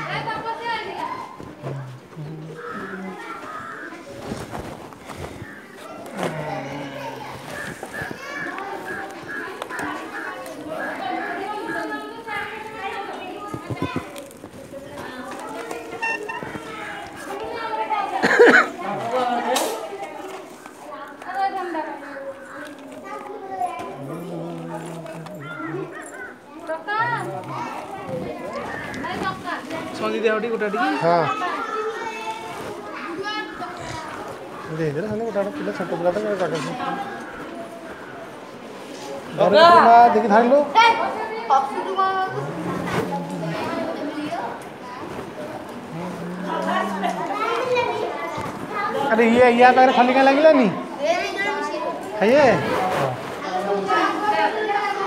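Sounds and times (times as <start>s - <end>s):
children chattering and calling: 0.0s - 55.0s.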